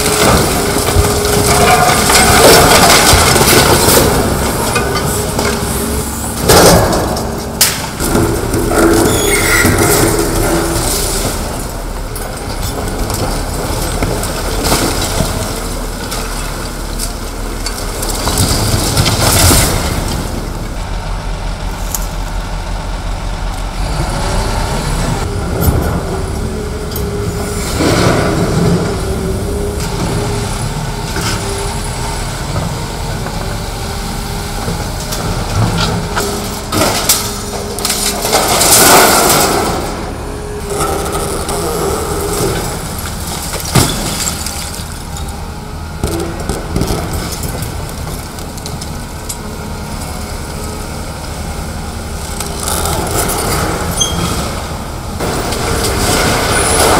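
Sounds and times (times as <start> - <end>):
masonry breaking and debris falling: 0.0 - 20.6, 35.2 - 40.1, 40.7 - 45.3, 52.4 - 56.9
excavator engine droning: 0.0 - 56.9.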